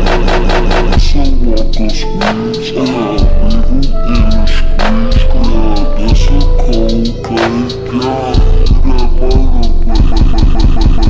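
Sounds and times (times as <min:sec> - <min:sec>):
rapid stutter of repeated chunk: 0:00.0 - 0:11.0
slowed trap music with deep bass: 0:00.0 - 0:11.0.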